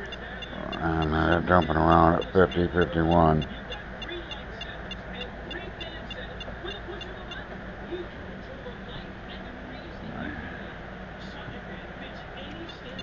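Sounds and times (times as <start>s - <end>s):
meter giving high ticks: 0.0s - 7.4s
steady low hum: 0.0s - 13.0s.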